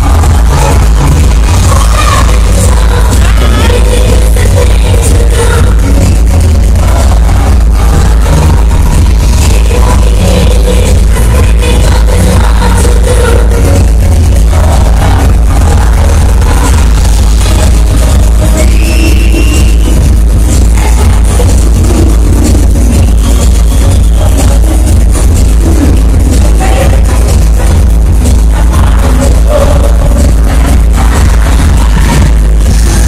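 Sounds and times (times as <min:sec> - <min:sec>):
live dance-pop music: 0:00.0 - 0:33.0.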